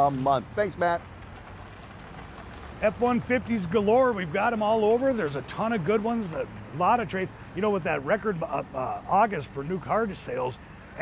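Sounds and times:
man speaking: 0:00.0 - 0:01.0, 0:02.8 - 0:11.0
outdoor background hiss: 0:00.0 - 0:11.0.

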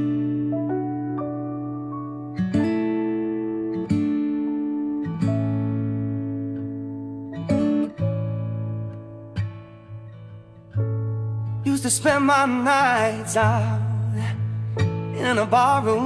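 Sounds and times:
acoustic guitar strummed chords: 0:00.0 - 0:16.0.

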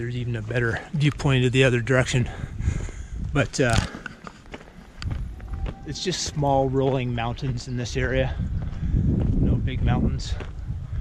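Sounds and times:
faint footsteps walking: 0:00.0 - 0:10.7.

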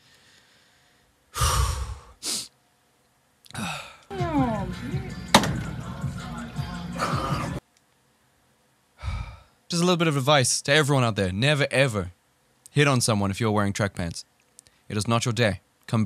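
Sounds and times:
man sighing: 0:01.3 - 0:02.5, 0:03.5 - 0:04.6, 0:09.0 - 0:09.6.

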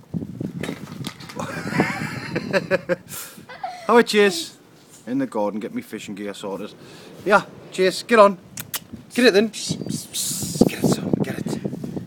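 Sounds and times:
puppy whining: 0:03.5 - 0:04.6.

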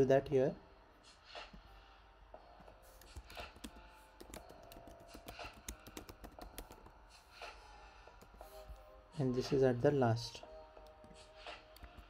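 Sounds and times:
computer keyboard key clicks: 0:03.0 - 0:06.9.

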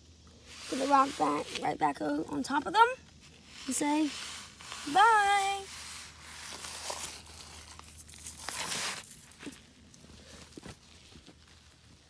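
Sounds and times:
faint crunching and rustling: 0:03.0 - 0:12.0.

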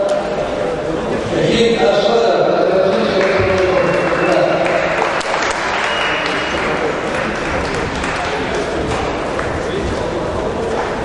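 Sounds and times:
audience applauding: 0:02.9 - 0:09.7.

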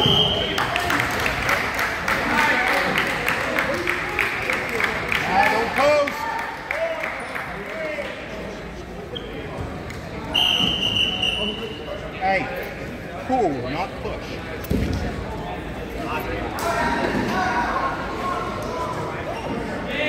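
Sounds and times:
referee whistle blast: 0:00.0 - 0:00.5, 0:10.3 - 0:11.8
chatter in gym: 0:00.0 - 0:20.0.

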